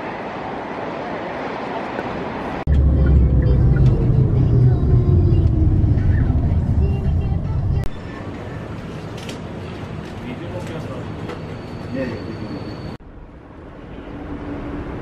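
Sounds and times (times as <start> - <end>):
car road noise: 0.0 - 15.0.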